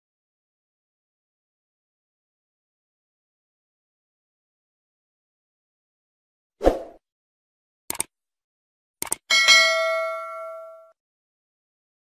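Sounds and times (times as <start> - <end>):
button clicks: 9.0 - 9.2
notification bell ding: 9.3 - 11.0.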